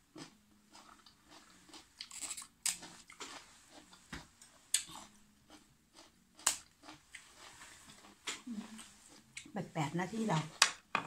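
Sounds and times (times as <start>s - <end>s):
person chewing crisp cabbage: 0.0s - 9.6s.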